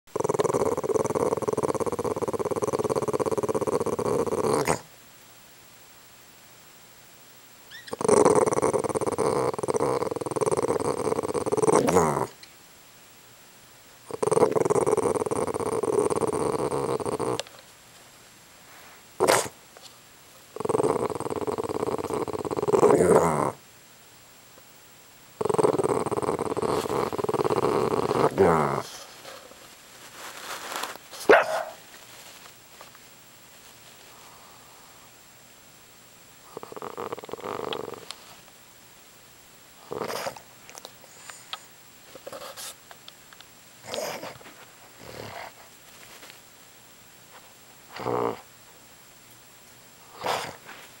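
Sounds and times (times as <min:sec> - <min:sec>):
dog growling: 0:00.1 - 0:04.9, 0:07.8 - 0:12.4, 0:14.1 - 0:17.6, 0:20.5 - 0:23.6, 0:25.4 - 0:29.4, 0:36.4 - 0:38.1, 0:39.8 - 0:40.4, 0:43.8 - 0:45.6, 0:47.9 - 0:48.5, 0:50.0 - 0:50.6.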